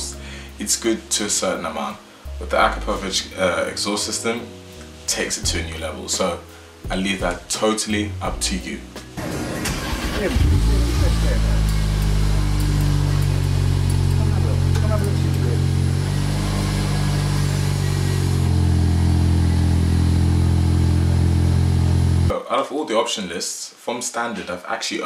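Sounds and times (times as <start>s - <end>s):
car engine fast idle: 9.2s - 22.3s.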